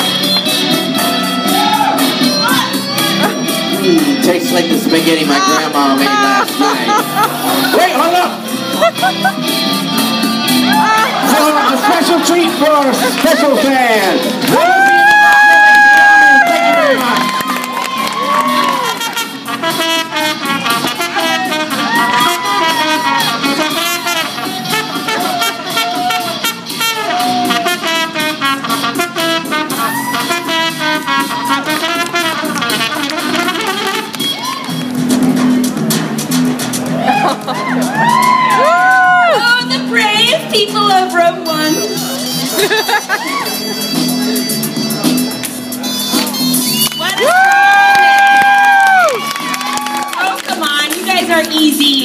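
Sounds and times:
trumpet playing a jaunty melody: 0:00.0 - 0:14.4, 0:18.2 - 0:34.6, 0:41.4 - 0:47.0.

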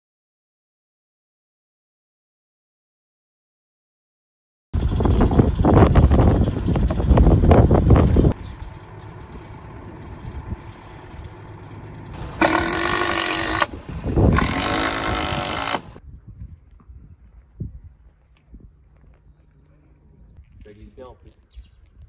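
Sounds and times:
diesel engine rumbling: 0:04.8 - 0:16.0.

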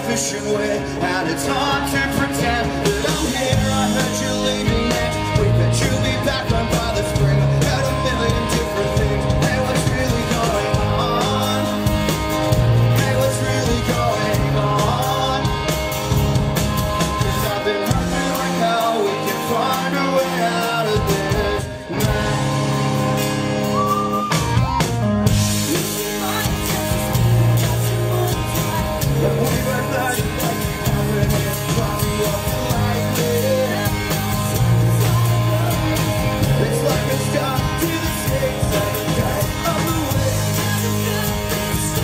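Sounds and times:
live rock band playing: 0:00.0 - 0:42.0
person singing lead vocals: 0:00.0 - 0:42.0.

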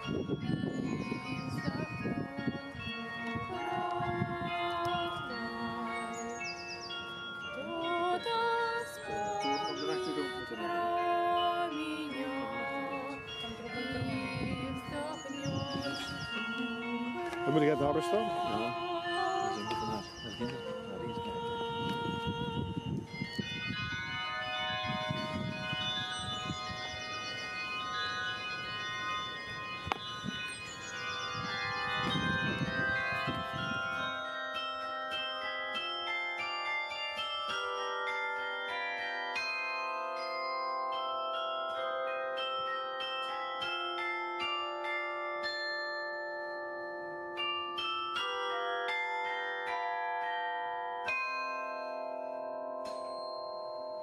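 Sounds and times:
carillon bells playing melody: 0:00.0 - 0:54.0.

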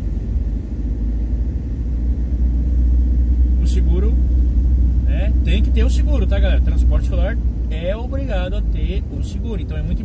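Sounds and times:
van engine rumble: 0:00.0 - 0:10.0.

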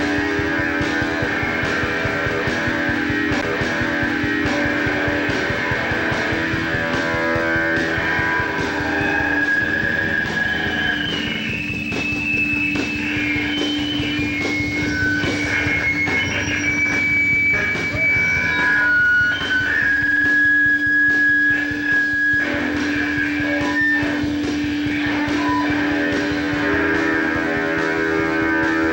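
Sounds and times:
drums hitting: 0:00.0 - 0:28.9
squealing electric guitar: 0:00.0 - 0:28.9.

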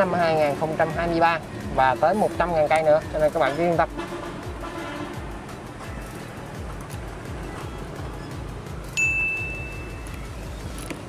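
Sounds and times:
soft music with low beat: 0:00.0 - 0:11.0
high chime ringing: 0:09.0 - 0:10.0.

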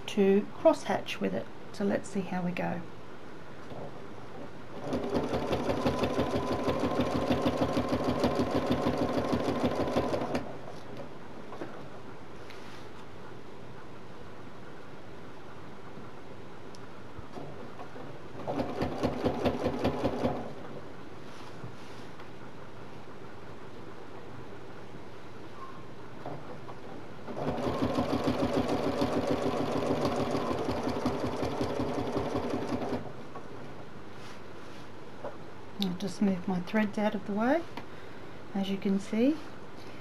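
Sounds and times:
steady low background noise: 0:00.0 - 0:40.0
sewing machine stitching: 0:04.7 - 0:10.6, 0:18.4 - 0:20.8, 0:27.3 - 0:33.2.

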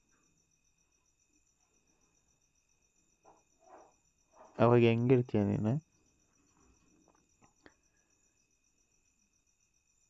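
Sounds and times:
faint high-pitched pulsing chirp: 0:00.0 - 0:10.0.

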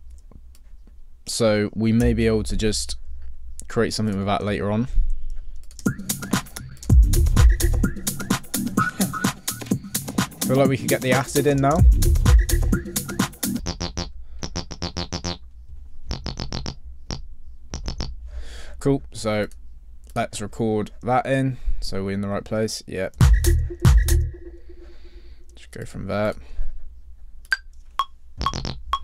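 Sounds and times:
low steady hum: 0:00.0 - 0:05.8
acid bass synth notes: 0:05.9 - 0:09.8, 0:10.4 - 0:15.4, 0:16.0 - 0:18.2, 0:23.2 - 0:25.2, 0:28.4 - 0:29.0
metronome clicks: 0:27.4 - 0:29.0.

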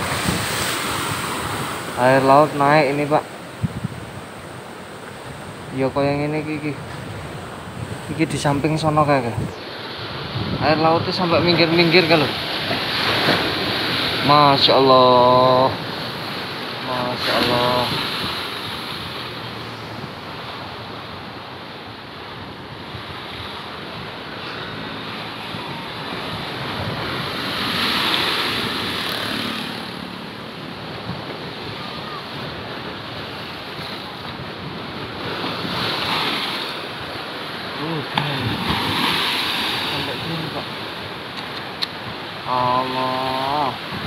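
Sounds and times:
wind on microphone: 0:00.0 - 0:02.0, 0:03.3 - 0:05.8, 0:06.7 - 0:14.2, 0:17.4 - 0:30.0, 0:43.8 - 0:44.0
surf breaking and washing up: 0:00.0 - 0:44.0.

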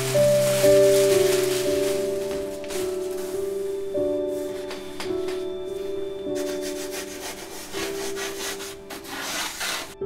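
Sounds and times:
soft background music: 0:00.0 - 0:10.0
rubbing strokes on a surface: 0:06.3 - 0:10.0.

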